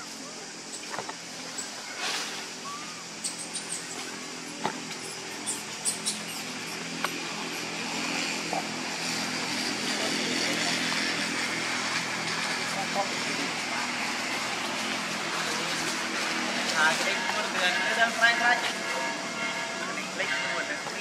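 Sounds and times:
vehicle engine running: 0.8 - 21.0
indistinct voices: 1.6 - 21.0.

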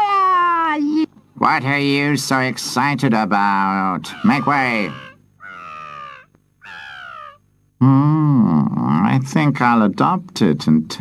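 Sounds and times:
baby crying: 4.1 - 7.4.

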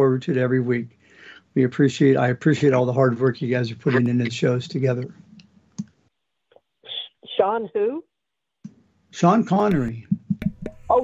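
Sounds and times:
man speaking: 0.0 - 0.9, 1.5 - 5.2, 9.2 - 10.1
person speaking: 1.6 - 5.3, 9.2 - 10.2.

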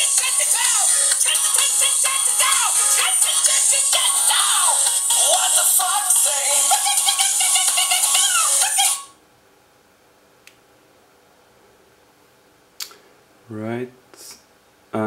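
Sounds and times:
dance-pop song through phone speaker: 0.0 - 9.1.

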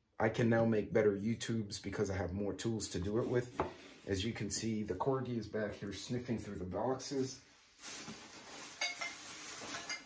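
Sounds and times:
soft rustling: 7.0 - 10.0.

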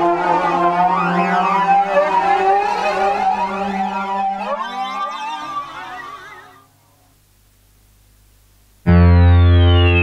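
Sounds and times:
synthesizer held low note: 8.9 - 10.0.

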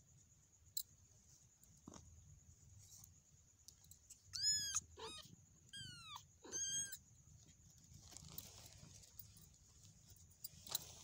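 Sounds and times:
kitten mewing: 4.3 - 7.0
faint rustling: 7.1 - 11.0.

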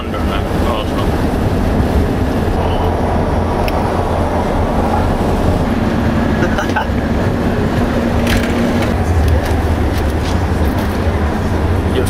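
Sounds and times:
bus engine and road rumble: 0.0 - 12.0
steady hum: 0.0 - 12.0.

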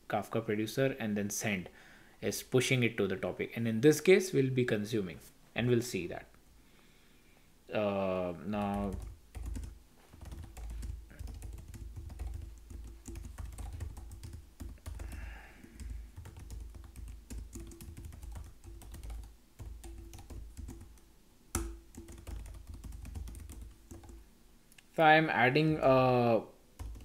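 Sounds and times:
typing on computer keyboard: 8.6 - 21.0, 21.6 - 24.2, 26.8 - 27.0.

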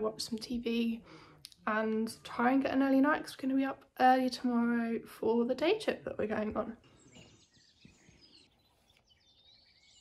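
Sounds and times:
faint bird chirps and whistles: 6.8 - 10.0.

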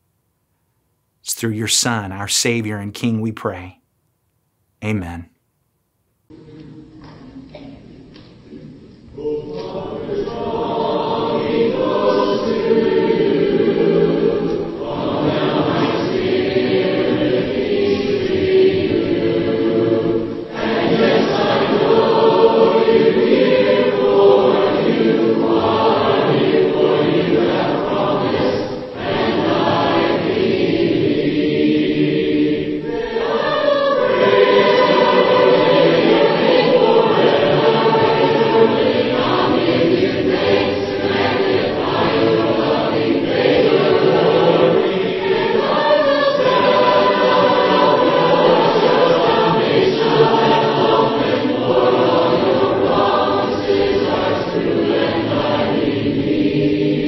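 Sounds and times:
choir singing a hymn: 9.1 - 57.0.

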